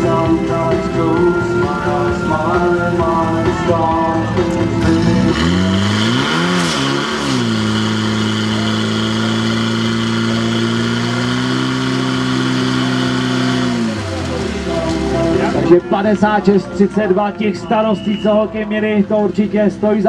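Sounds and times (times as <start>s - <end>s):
pump engine revving: 0.0s - 15.8s.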